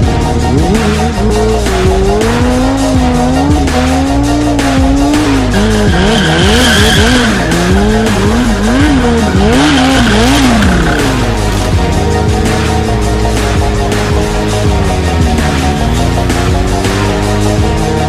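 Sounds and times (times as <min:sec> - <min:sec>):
background music: 0:00.0 - 0:18.0
motorcycle engine revving: 0:00.0 - 0:18.0
tyre squealing on tarmac: 0:05.4 - 0:11.3.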